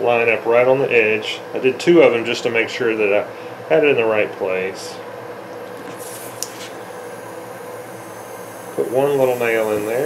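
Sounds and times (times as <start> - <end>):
workshop room hum: 0.0 - 10.0.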